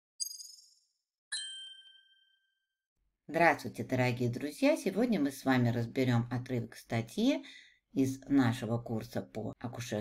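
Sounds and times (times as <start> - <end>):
high bright chime ding: 1.3 - 2.4
lower chime ding: 1.3 - 2.4.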